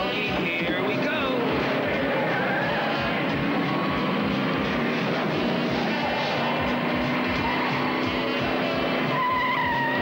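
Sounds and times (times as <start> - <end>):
song with steady beat and singing: 0.0 - 9.2
vehicle engine: 0.0 - 10.0.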